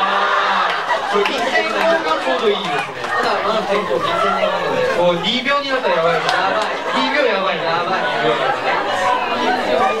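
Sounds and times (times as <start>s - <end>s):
voices talking over one another: 0.6s - 10.0s.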